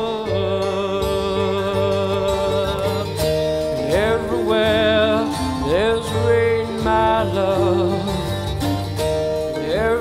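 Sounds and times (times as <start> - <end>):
acoustic guitar: 0.0 - 10.0
bass: 0.0 - 10.0
man singing with vibrato: 0.0 - 10.0.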